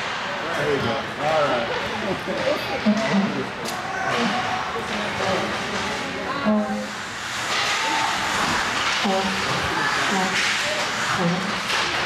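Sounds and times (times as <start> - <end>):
spectators talking and laughing: 0.0 - 11.7
indoor ice hockey game noise: 0.0 - 12.0.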